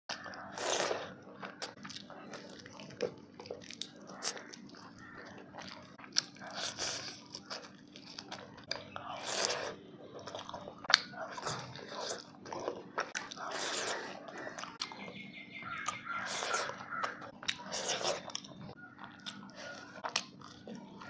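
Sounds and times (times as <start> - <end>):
crunchy chewing: 0.1 - 21.0.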